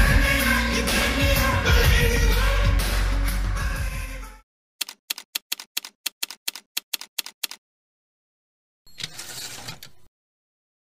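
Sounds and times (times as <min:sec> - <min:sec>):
typewriter keys clacking: 0:04.8 - 0:07.6.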